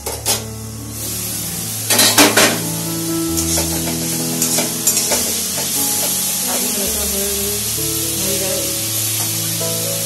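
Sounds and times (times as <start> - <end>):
food sizzling in a wok: 0.0 - 10.0.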